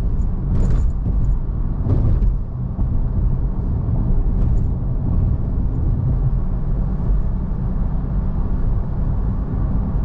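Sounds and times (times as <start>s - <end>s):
car driving at speed: 0.0s - 10.0s.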